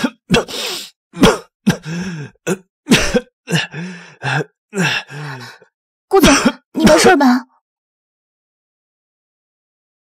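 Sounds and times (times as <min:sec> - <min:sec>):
man coughing: 0:00.0 - 0:00.6, 0:01.2 - 0:03.8, 0:06.2 - 0:07.1.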